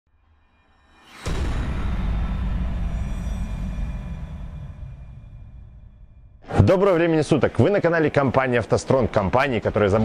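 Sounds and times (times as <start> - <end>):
low rumbling boom: 1.1 - 6.5.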